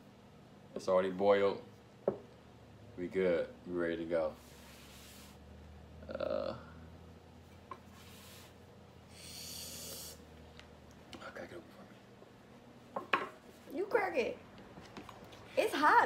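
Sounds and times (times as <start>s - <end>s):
murmured vocal sound: 6.0s - 6.9s
breathy hiss: 7.9s - 10.3s.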